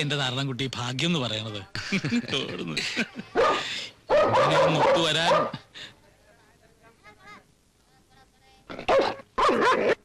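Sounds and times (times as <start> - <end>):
dog barking: 3.4 - 5.6, 8.9 - 10.0.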